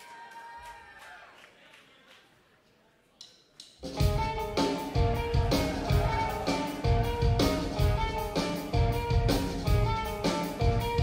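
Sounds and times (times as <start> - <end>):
metal band playing: 3.8 - 11.0.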